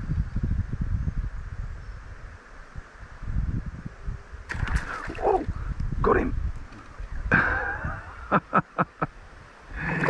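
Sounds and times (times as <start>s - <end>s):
man laughing: 7.3s - 9.1s.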